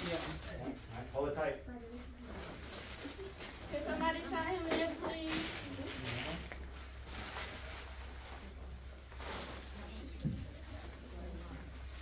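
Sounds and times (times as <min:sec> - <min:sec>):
faint background voices: 0:00.0 - 0:12.0
soft rustles: 0:01.8 - 0:12.0.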